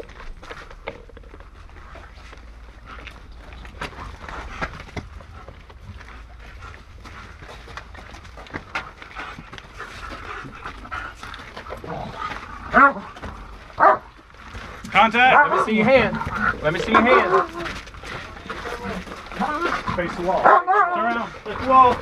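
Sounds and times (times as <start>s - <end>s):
light footsteps: 0.0s - 22.0s
dog panting: 1.8s - 14.0s, 15.3s - 20.6s
dog barking: 12.7s - 13.1s, 13.8s - 14.1s, 15.3s - 15.8s, 16.9s - 17.6s, 20.4s - 21.1s.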